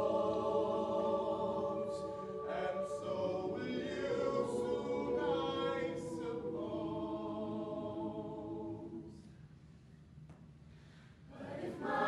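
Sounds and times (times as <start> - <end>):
mixed choir singing a cappella: 0.0 - 9.2, 11.3 - 12.0.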